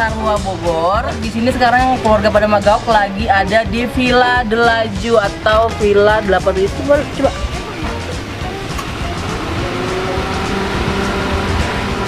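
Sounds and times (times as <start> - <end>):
motor vehicle running: 0.0 - 12.0.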